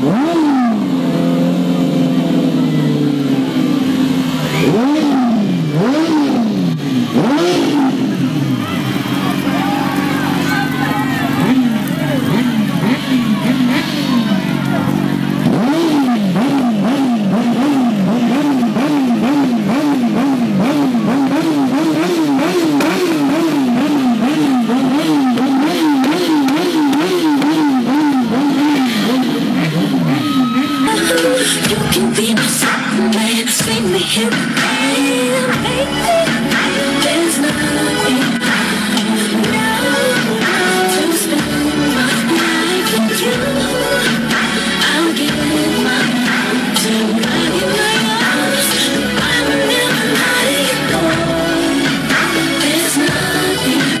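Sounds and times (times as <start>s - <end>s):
engine revving: 0.0s - 54.0s.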